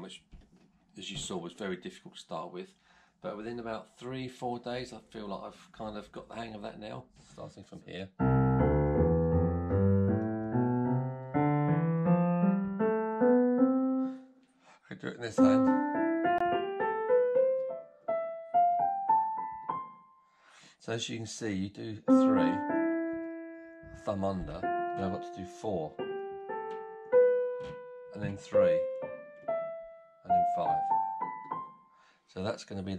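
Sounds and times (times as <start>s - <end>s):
digital piano playing a scale: 8.2s - 14.4s, 15.2s - 20.4s, 22.0s - 32.1s.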